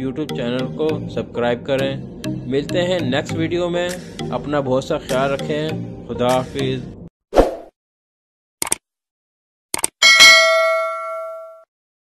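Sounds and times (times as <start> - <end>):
bell ding: 10.0 - 11.7.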